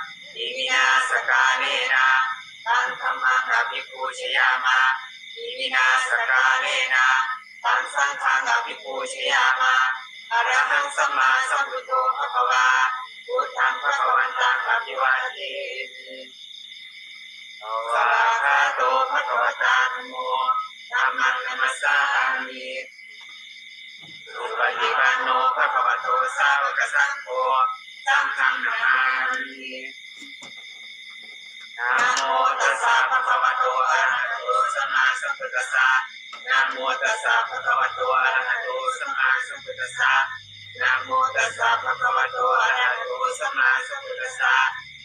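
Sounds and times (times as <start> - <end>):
group chanting in unison: 0.0 - 16.3, 17.6 - 22.9, 24.0 - 29.9, 31.8 - 44.9.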